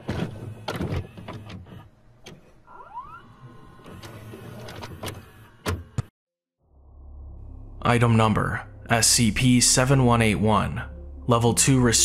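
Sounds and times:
tape loading clicks and clunks: 0.0 - 6.1.

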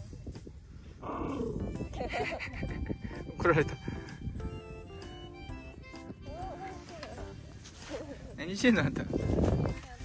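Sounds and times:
background music: 0.0 - 10.0
small dog growling: 1.0 - 1.7.

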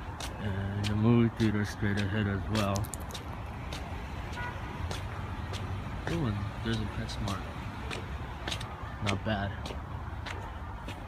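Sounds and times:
traffic and car engine rumble: 0.0 - 11.0.

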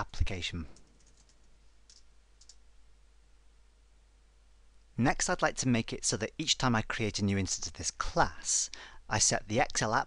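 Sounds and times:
computer keyboard clicks: 0.8 - 2.6.

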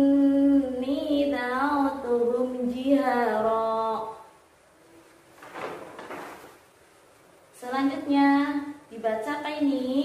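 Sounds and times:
paper page turning swish: 5.3 - 6.6.

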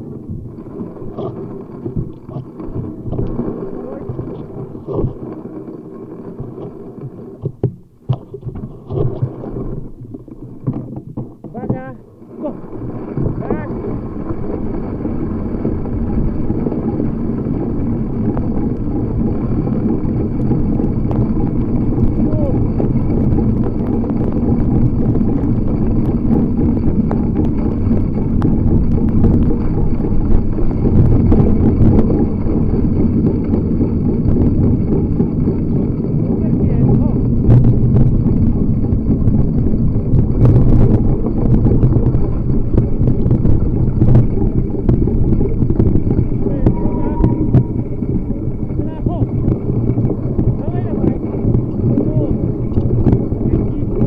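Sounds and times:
bicycle rolling on dirt trail: 0.0 - 54.0
bike knocks and rattles: 0.0 - 54.0
wind buffeting microphone: 0.0 - 54.0.

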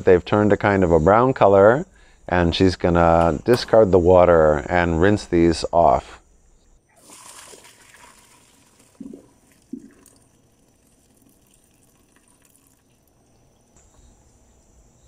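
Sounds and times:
water pouring into a sink: 6.9 - 13.6.

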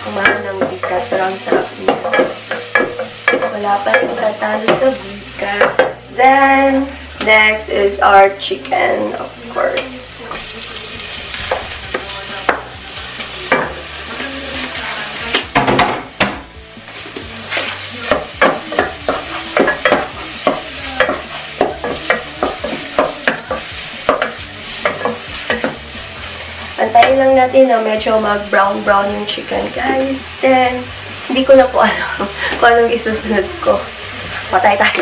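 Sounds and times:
chicken sizzling in hot oil: 0.0 - 35.0.

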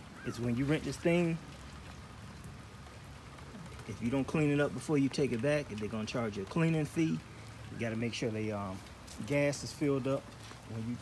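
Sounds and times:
light rain falling: 0.0 - 11.0.

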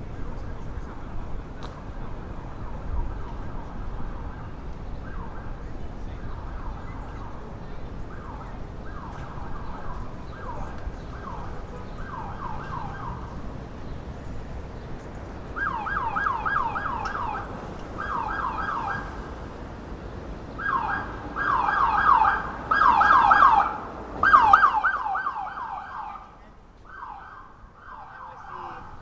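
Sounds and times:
emergency vehicle siren yelping: 2.2 - 13.8, 15.4 - 19.6, 20.4 - 29.0.

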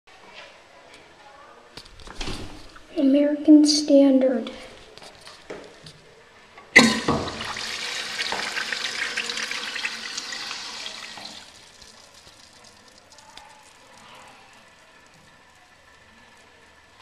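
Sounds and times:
urinal flushing: 6.8 - 17.0
faint water trickle: 7.4 - 17.0.

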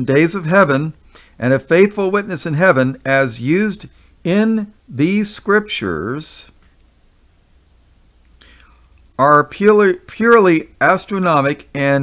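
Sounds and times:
man speaking: 0.0 - 6.6, 9.2 - 12.0
faint low hum: 0.0 - 12.0
man inhaling: 1.0 - 1.4, 3.9 - 4.2, 8.4 - 9.0.

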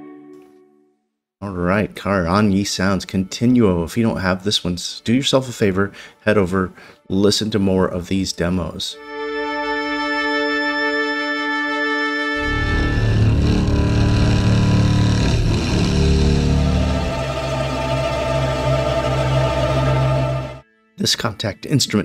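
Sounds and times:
cinematic guitar pad chords: 12.4 - 20.6
deep dense pad layer: 12.4 - 20.6.

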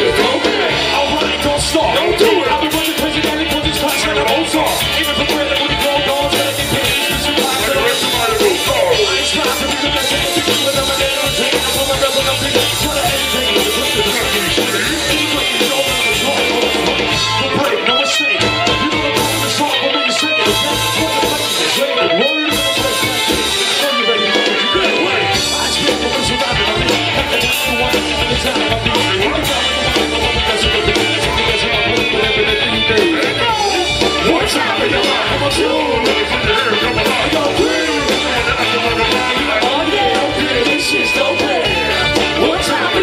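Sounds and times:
live band music through pa: 0.0 - 43.0.

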